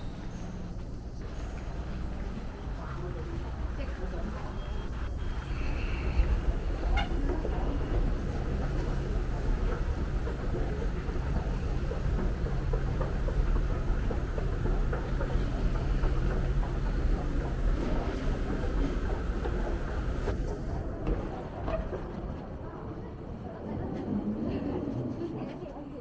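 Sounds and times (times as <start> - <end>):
escalator humming and rumbling: 0.0 - 26.0.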